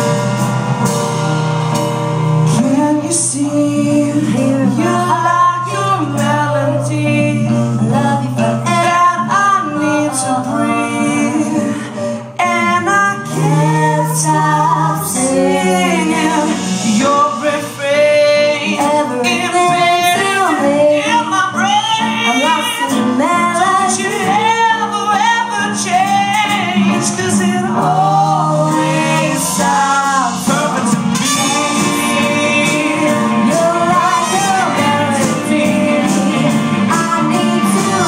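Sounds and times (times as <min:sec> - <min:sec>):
drums: 0:00.0 - 0:38.0
woman singing: 0:02.5 - 0:38.0
electric guitar: 0:25.6 - 0:38.0.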